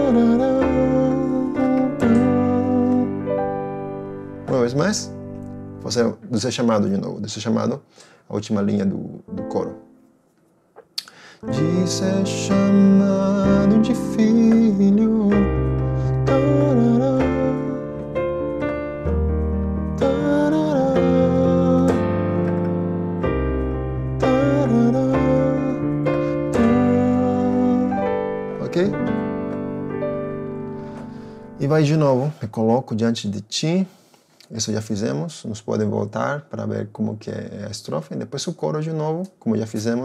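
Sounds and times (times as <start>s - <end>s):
piano chords on keyboard: 0.0s - 7.7s, 8.6s - 10.1s, 11.2s - 32.3s.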